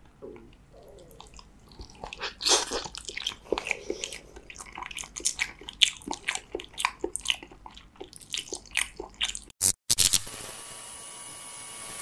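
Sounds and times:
person chewing wetly: 0.0 - 9.5.

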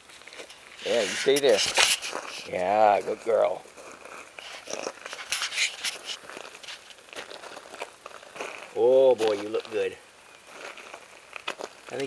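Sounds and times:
footsteps crunching on gravel: 0.0 - 12.0.

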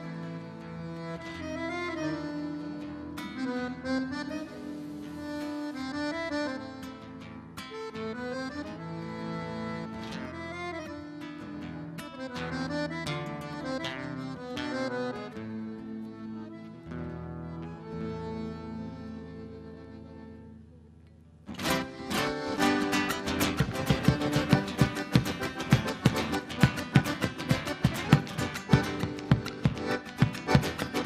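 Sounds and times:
accordion melody: 0.0 - 31.0
strummed guitar: 0.0 - 31.0
sharp percussive strikes: 23.0 - 31.0.

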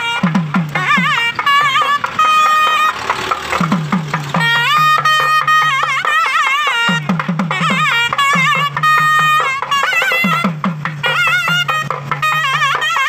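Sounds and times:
double-reed pipe melody: 0.0 - 13.0
drum with bending low strokes: 0.0 - 13.0.

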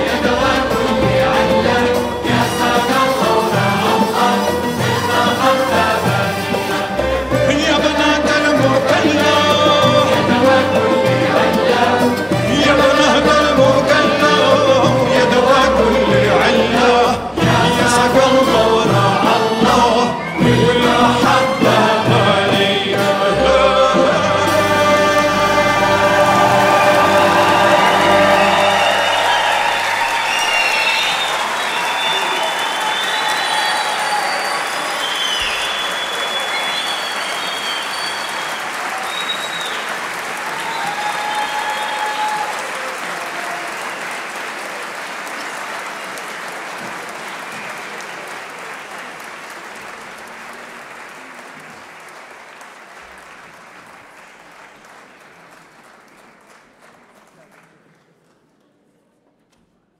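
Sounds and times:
audience applauding and cheering: 0.0 - 58.2
orchestra chord: 21.0 - 29.4
shouts from audience: 40.4 - 44.0.

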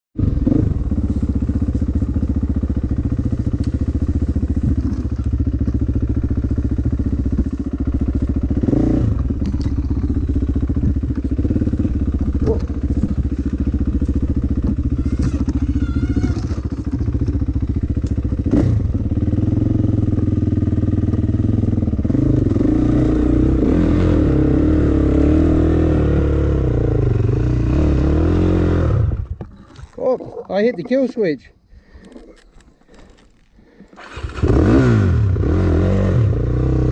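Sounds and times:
dirt bike engine revving: 0.2 - 29.3, 34.0 - 36.9
knocks from bike: 12.3 - 13.6.

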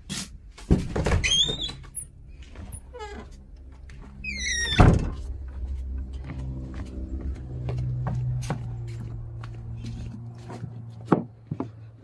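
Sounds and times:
door hinges squeaking: 1.0 - 3.4, 4.2 - 5.2
door shutting with thud: 4.3 - 5.2.

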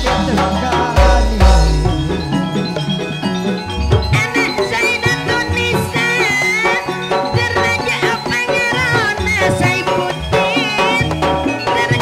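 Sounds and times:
deep booming strokes: 0.0 - 4.3
gamelan metallophone melody: 0.0 - 12.0.

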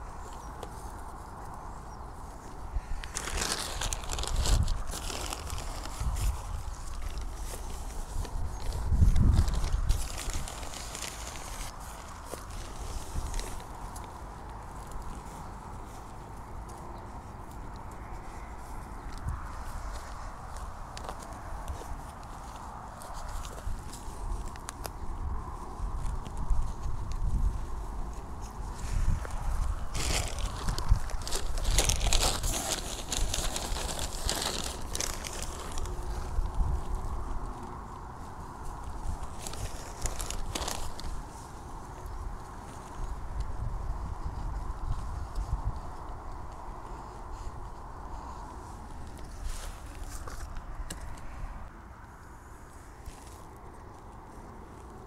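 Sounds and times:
plastic bag rustling and crinkling: 0.0 - 45.8, 46.4 - 51.3
soil scraped and pressed: 2.6 - 14.1, 28.1 - 36.8.

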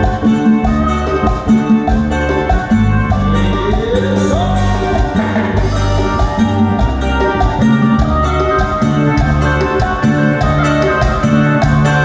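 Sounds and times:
bass line: 0.0 - 12.0
live dance band music: 0.0 - 12.0
regular drum beat: 0.0 - 12.0.

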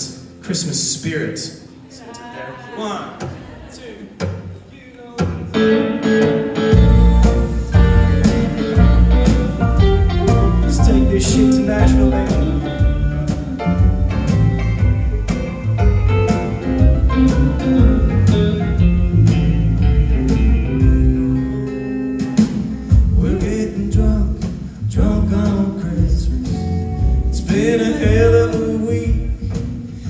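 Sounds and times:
guitar: 0.0 - 2.6, 4.2 - 30.0
live country band: 0.0 - 30.0
steady drum beat: 6.7 - 21.4, 22.1 - 30.0.

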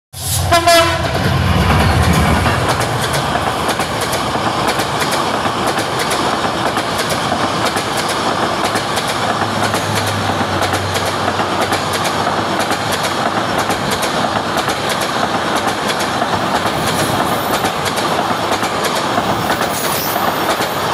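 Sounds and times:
passenger train passing: 0.1 - 20.9
wheels clacking over rail joints: 1.2 - 20.9.

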